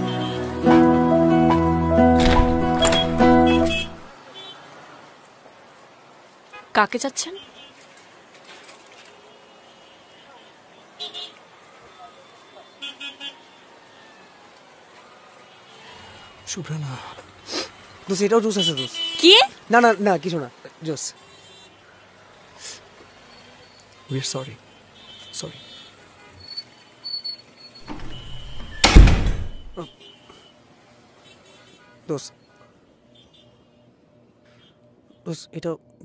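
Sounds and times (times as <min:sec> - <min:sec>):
faint street traffic: 0:00.0 - 0:36.0
door slamming shut: 0:02.1 - 0:04.1, 0:27.8 - 0:29.8
quick horn toots: 0:02.2 - 0:04.1.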